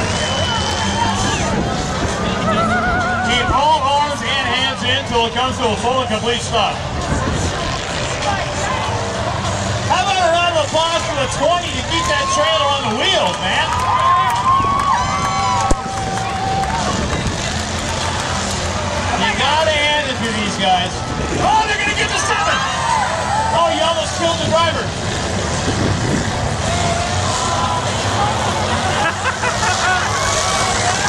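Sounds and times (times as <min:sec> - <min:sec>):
crowd voices: 0:00.0 - 0:31.0
race car engines rumbling: 0:00.0 - 0:31.0.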